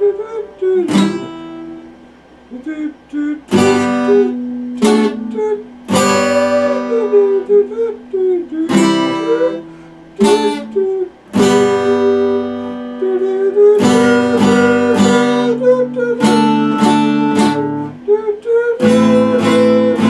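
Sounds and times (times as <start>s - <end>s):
acoustic guitar strummed chords: 0.0s - 20.0s.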